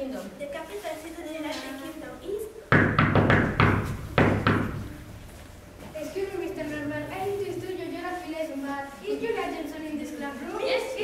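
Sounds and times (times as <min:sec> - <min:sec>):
loud knocking: 0:02.7 - 0:05.1.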